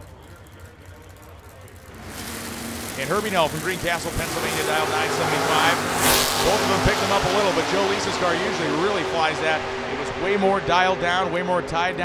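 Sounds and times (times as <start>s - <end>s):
drag car engines idling: 0.0s - 12.0s
faint voices: 0.0s - 12.0s.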